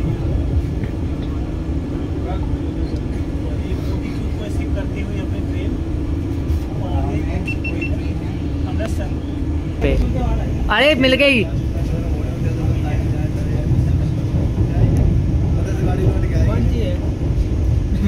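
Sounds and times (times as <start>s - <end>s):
faint passenger voices: 0.0s - 18.0s
steady hum: 0.0s - 18.0s
train running rumble: 0.0s - 18.0s.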